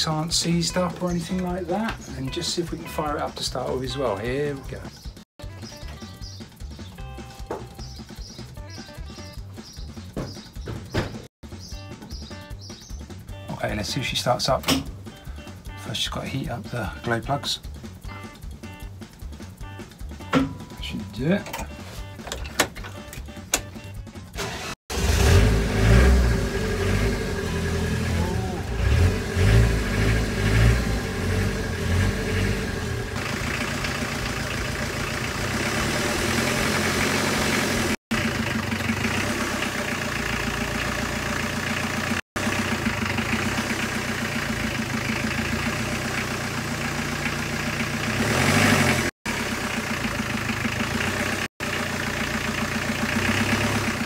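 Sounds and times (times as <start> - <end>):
diesel engine starting and idling: 17.8 - 54.0.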